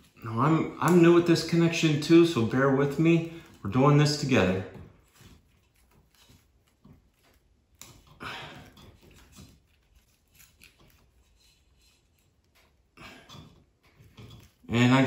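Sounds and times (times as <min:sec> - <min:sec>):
fingers handling wire: 0:00.0 - 0:15.0.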